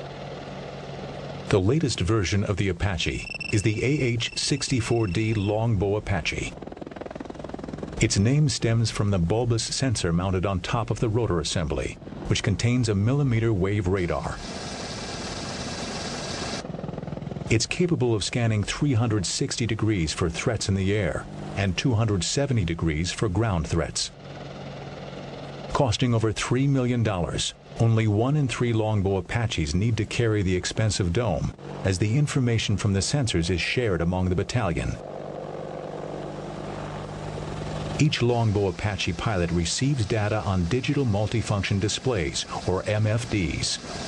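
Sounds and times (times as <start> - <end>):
helicopter flying: 0.0 - 44.0.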